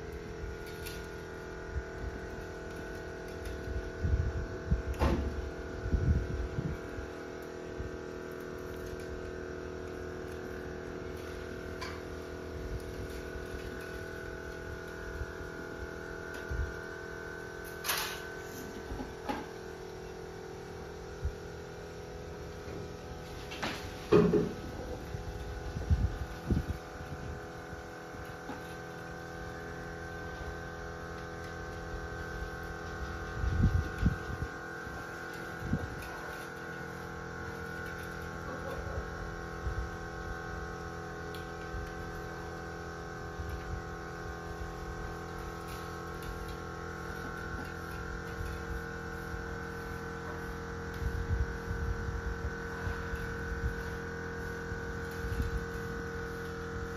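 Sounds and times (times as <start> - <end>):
steady hum of held tones: 0.0 - 56.9.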